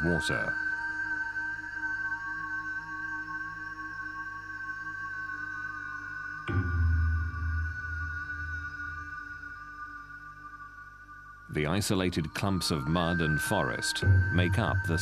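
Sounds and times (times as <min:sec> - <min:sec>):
pulsing low notes: 0:14.0 - 0:15.0.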